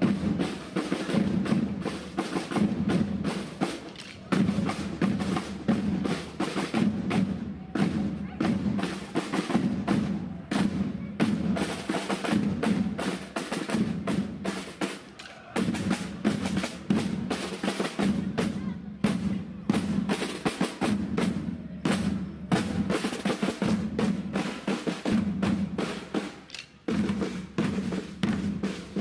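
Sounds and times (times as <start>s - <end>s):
marching drums playing parade beat: 0.0s - 29.0s.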